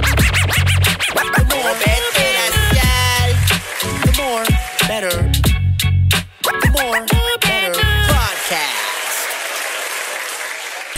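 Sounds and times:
applause: 1.4s - 5.2s, 8.1s - 10.9s.

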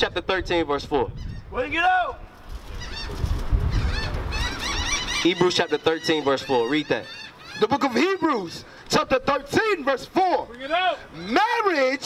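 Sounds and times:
man shouting through microphone: 1.5s - 2.3s, 7.6s - 12.0s.

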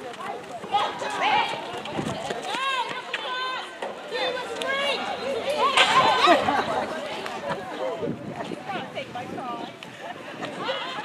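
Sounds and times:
young voices shouting: 0.7s - 1.7s, 2.5s - 8.0s.

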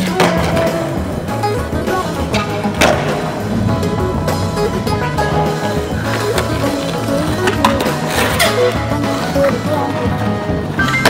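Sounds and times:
background music: 0.0s - 11.0s
skateboard clacks: 0.0s - 11.0s
skateboard wheels rolling on asphalt: 0.0s - 11.0s.

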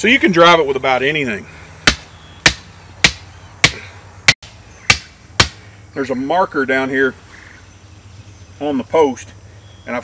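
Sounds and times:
hammer striking plastic post: 1.8s - 3.8s, 4.4s - 5.6s.

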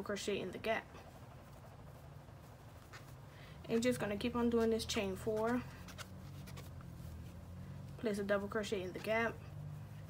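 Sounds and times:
low steady hum: 0.0s - 10.0s
yarn rustling with crochet hook: 0.1s - 10.0s.

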